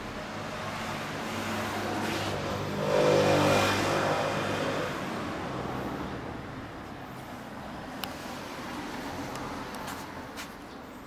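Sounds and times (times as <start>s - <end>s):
vehicle passing by: 0.2s - 10.2s.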